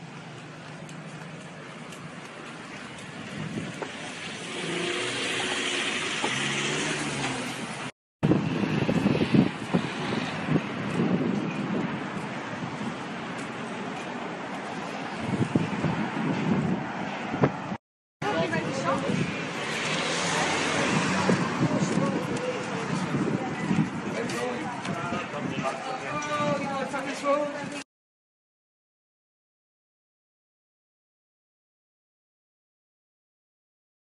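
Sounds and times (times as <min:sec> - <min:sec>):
road traffic: 0:00.0 - 0:27.8.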